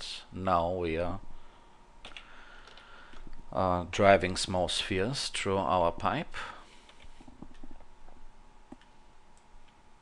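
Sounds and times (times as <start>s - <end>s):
low background hiss: 0.0s - 10.0s
faint computer clicks: 2.0s - 3.4s
person speaking: 3.5s - 6.7s.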